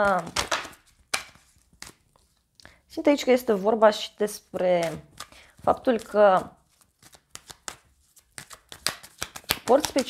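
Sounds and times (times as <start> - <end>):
cards slapping and tapping: 0.0 - 2.4, 4.6 - 10.0.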